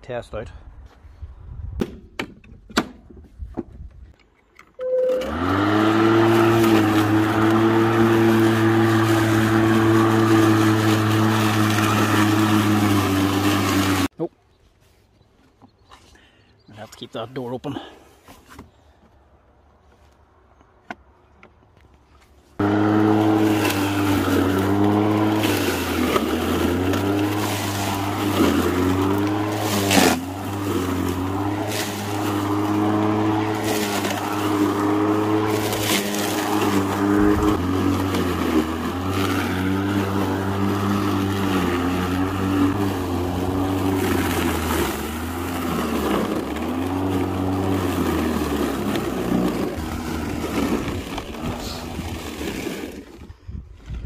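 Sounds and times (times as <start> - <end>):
electric lawn mower running: 4.8 - 14.1, 22.6 - 53.4.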